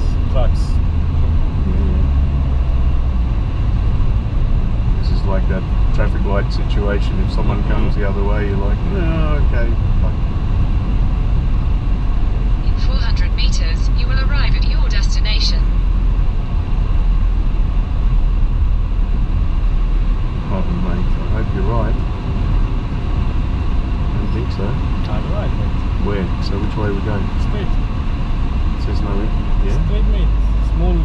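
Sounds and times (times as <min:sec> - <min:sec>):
car road and engine rumble: 0:00.0 - 0:31.0
indistinct talking: 0:01.6 - 0:02.1, 0:05.0 - 0:10.2, 0:12.6 - 0:15.7, 0:20.5 - 0:22.0, 0:24.2 - 0:27.8, 0:28.8 - 0:31.0.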